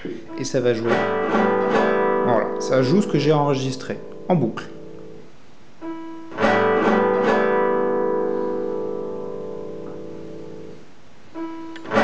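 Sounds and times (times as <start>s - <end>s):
strummed guitar chords: 0.0s - 12.0s.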